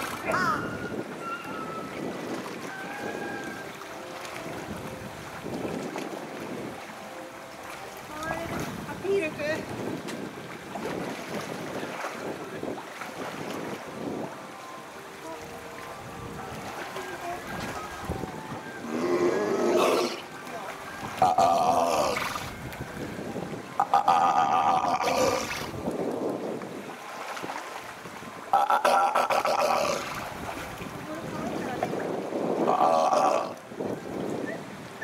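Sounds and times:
seals splashing in pool water: 0:00.0 - 0:13.9, 0:15.2 - 0:25.8, 0:26.9 - 0:33.6.

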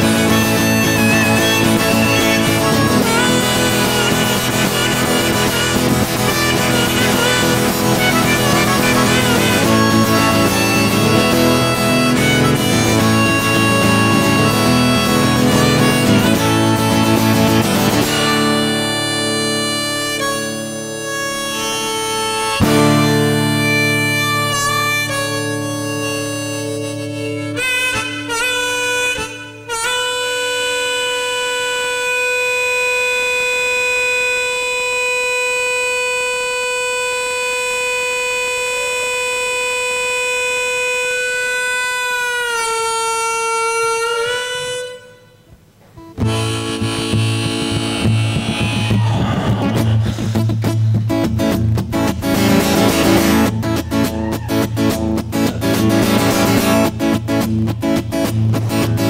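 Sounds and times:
strummed acoustic guitar: 0:00.0 - 0:33.2, 0:44.2 - 0:59.0
harmonica solo: 0:00.0 - 0:59.0.

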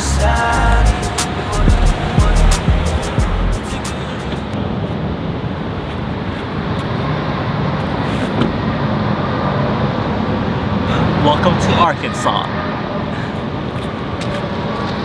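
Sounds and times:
road traffic rushing: 0:00.0 - 0:15.0
man saying oh: 0:11.3 - 0:12.6.

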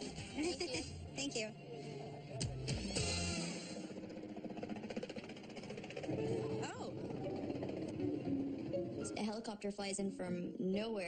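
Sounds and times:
helicopter engine: 0:02.8 - 0:09.3
helicopter rotor chopping: 0:02.8 - 0:09.4.

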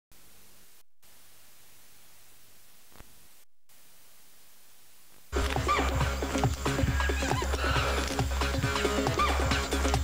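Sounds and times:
steady low hum: 0:00.1 - 0:09.0
tape hiss: 0:00.1 - 0:10.0
rhythmic music: 0:05.4 - 0:10.0
animal calls sliding in pitch: 0:06.8 - 0:08.2.

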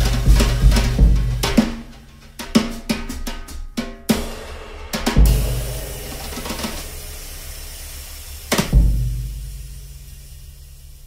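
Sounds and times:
brush hit on drum: 0:00.0 - 0:07.7
bass drum ringing: 0:04.1 - 0:10.0.

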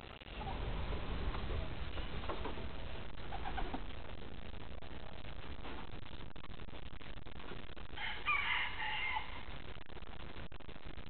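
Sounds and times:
steady low rumble: 0:00.0 - 0:08.0, 0:09.2 - 0:11.0.

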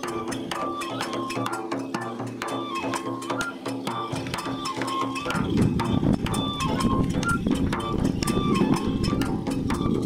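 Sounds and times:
held flute-like notes: 0:00.0 - 0:10.0
sharp rapid percussion strikes: 0:00.0 - 0:10.0
taiko drum: 0:00.0 - 0:10.0.

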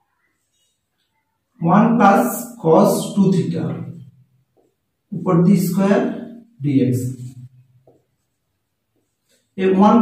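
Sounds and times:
man speaking: 0:01.6 - 0:04.1, 0:05.1 - 0:07.4, 0:09.6 - 0:10.0
marker writing on whiteboard: 0:04.4 - 0:06.2, 0:07.1 - 0:09.8.

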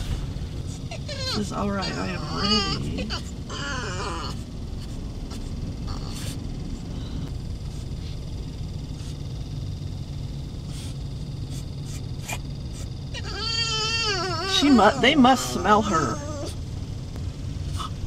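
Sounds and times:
low rumble inside car: 0:00.0 - 0:18.0
dog whining: 0:00.7 - 0:06.4, 0:11.9 - 0:16.6.

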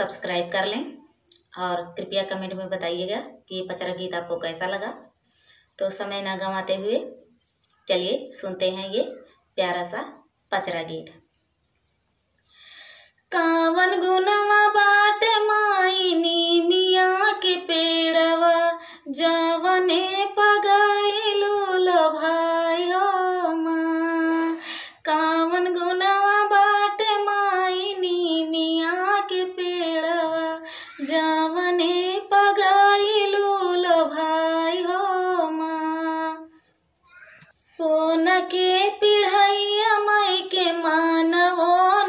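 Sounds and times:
woman singing unaccompanied folk song: 0:00.0 - 0:11.2, 0:12.4 - 0:42.0.

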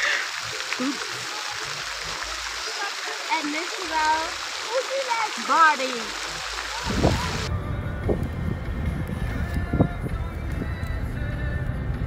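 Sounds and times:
water noise: 0:00.0 - 0:12.0.

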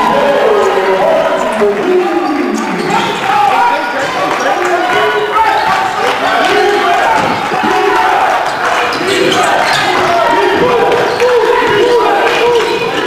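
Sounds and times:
voices of players and spectators: 0:00.0 - 0:13.0.

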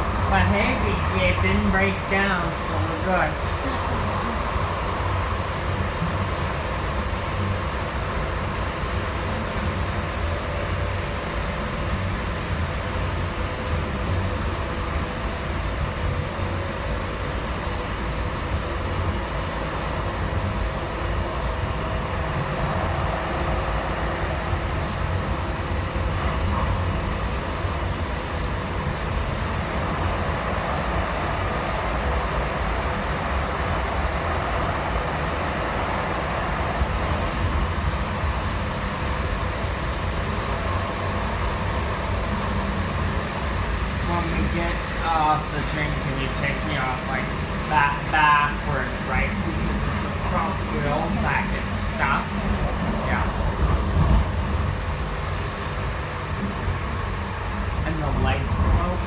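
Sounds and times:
faint steady hum: 0:00.0 - 0:59.0
rail car rumble on track: 0:00.0 - 0:59.0.

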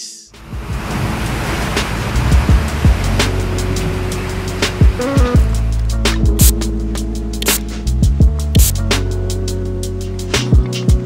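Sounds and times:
rushing swell: 0:00.3 - 0:07.6
deep sliding bass notes: 0:00.3 - 0:11.0
electronic music: 0:02.2 - 0:11.0
sharp percussive hits: 0:06.1 - 0:06.7, 0:08.6 - 0:09.0.

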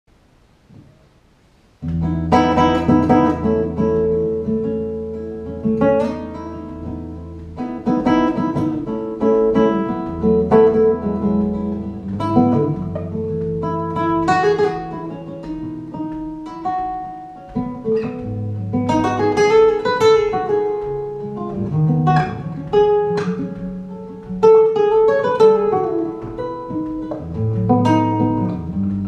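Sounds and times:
acoustic guitar chords and notes: 0:00.1 - 0:29.0.

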